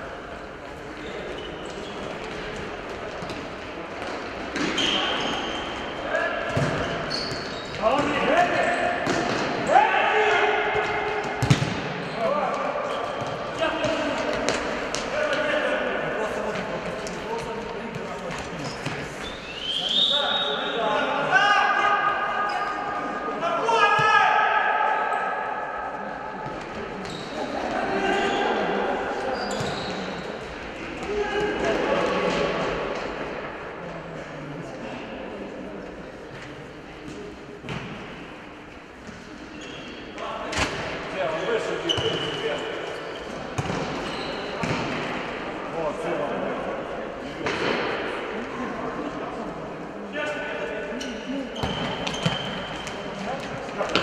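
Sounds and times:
ball kicked and bouncing: 0:06.5 - 0:07.4, 0:11.4 - 0:11.8
players shouting: 0:08.0 - 0:11.4.

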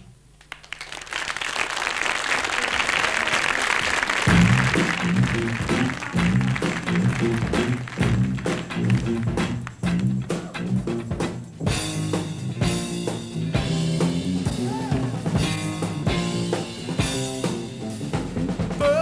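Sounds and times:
drum kit: 0:04.0 - 0:19.0
electric guitar: 0:04.2 - 0:19.0.

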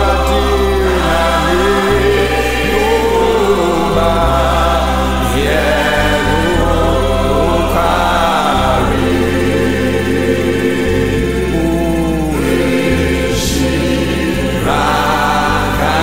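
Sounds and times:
gospel choir singing: 0:00.0 - 0:16.0
held bass notes: 0:00.0 - 0:16.0.

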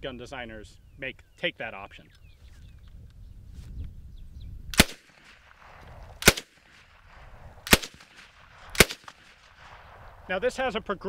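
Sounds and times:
submachine gun single shots: 0:04.8 - 0:09.9.

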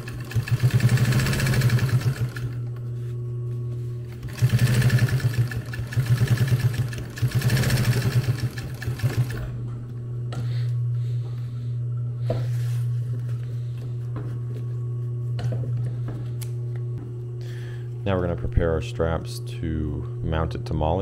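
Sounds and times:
sewing machine stitching: 0:00.0 - 0:02.6, 0:04.1 - 0:09.5
sewing machine motor humming: 0:00.0 - 0:02.9, 0:04.0 - 0:09.6.

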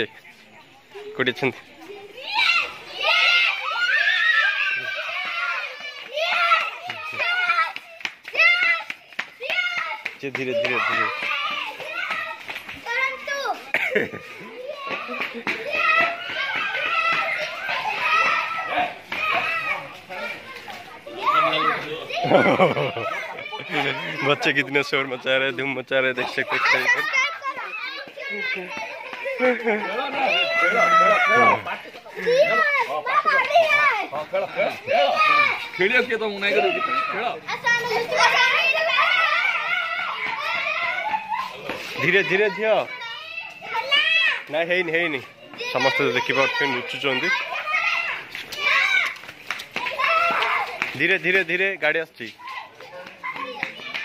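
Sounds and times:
children shouting and chattering: 0:00.0 - 0:54.0.

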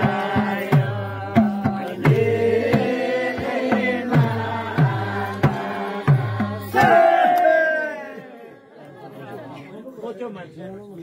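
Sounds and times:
hand drum beat: 0:00.0 - 0:07.0
group chatter: 0:06.8 - 0:11.0.

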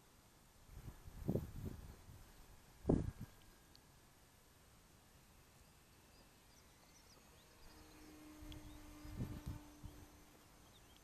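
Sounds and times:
distant light aircraft engine drone: 0:00.0 - 0:11.0
small birds chirping: 0:05.0 - 0:11.0.

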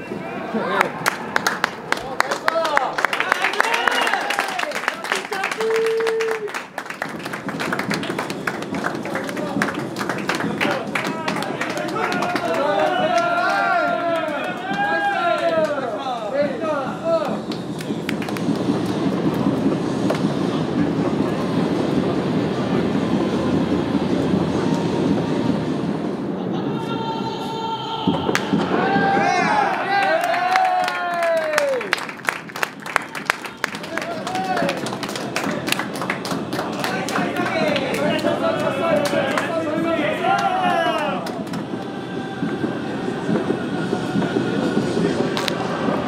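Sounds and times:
players shouting and cheering: 0:00.0 - 0:17.5, 0:26.5 - 0:32.2, 0:32.8 - 0:46.0
stadium noise: 0:00.0 - 0:46.0.

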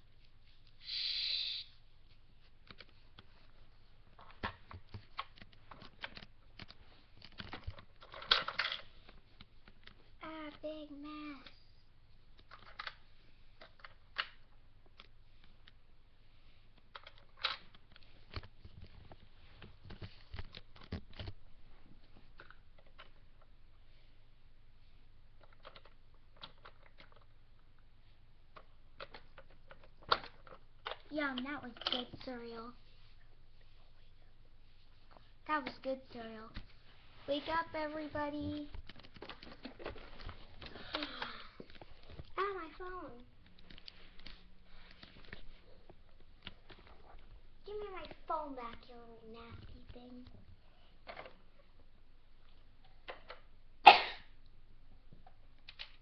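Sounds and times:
plastic toys clicking and knocking: 0:04.2 - 0:10.6, 0:12.4 - 0:13.0, 0:13.6 - 0:15.1, 0:16.9 - 0:21.3, 0:22.3 - 0:23.5, 0:25.4 - 0:27.4, 0:28.5 - 0:32.4, 0:38.4 - 0:44.4, 0:51.0 - 0:51.4, 0:52.8 - 0:53.5, 0:55.2 - 0:56.0.

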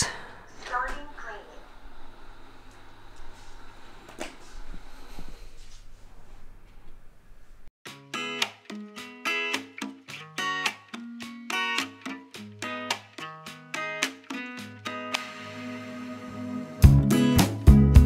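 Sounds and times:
plucked-string background music: 0:07.9 - 0:18.0.

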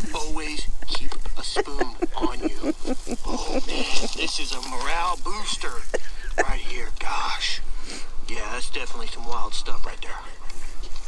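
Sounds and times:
men laughing: 0:00.0 - 0:07.6.

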